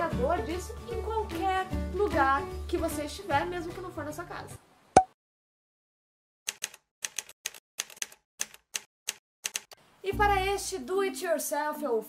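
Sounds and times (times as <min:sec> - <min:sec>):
typewriter keystrokes: 0:06.5 - 0:09.8.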